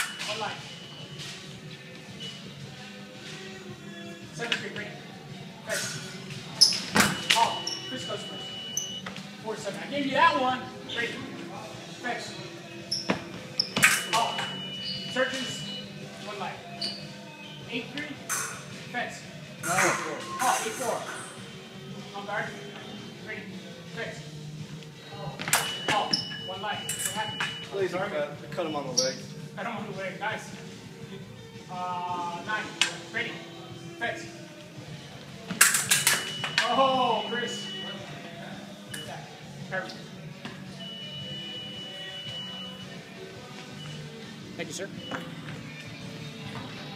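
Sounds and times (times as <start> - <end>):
high electronic beep: 7.0 - 9.1, 13.7 - 16.0, 19.9 - 20.9, 25.5 - 27.8, 36.0 - 38.2, 40.8 - 43.0, 44.8 - 45.8.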